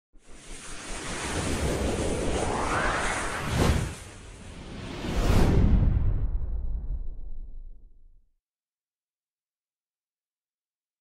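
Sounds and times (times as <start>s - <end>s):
rushing whoosh: 0.3s - 7.2s.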